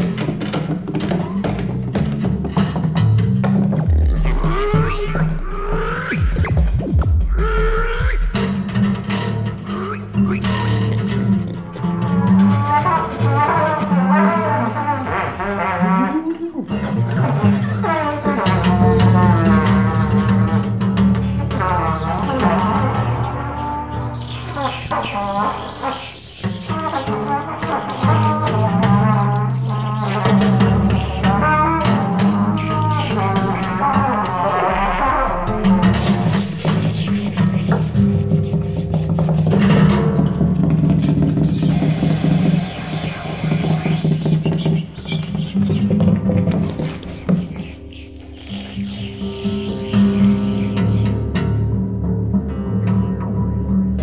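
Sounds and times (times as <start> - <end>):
sustained low notes: 2.6 - 10.2, 29.1 - 38.1
trumpet playing bending lines: 3.9 - 8.4, 11.6 - 39.3.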